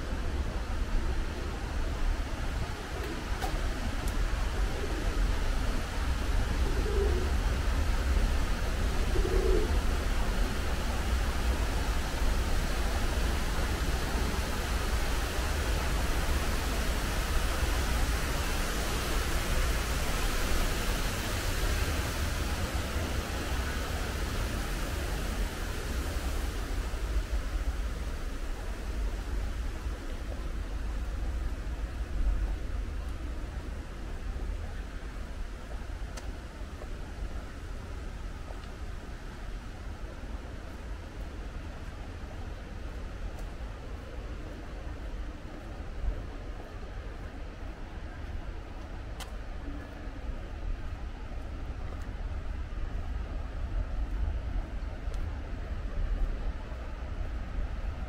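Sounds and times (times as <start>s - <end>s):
low urban rumble: 0.0s - 58.0s
pigeon cooing: 6.6s - 7.3s, 9.1s - 9.8s.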